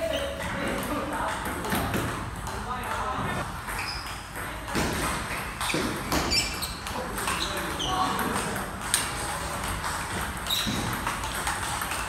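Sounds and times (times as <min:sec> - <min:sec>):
ping pong ball clicking off paddles: 0:00.0 - 0:12.0.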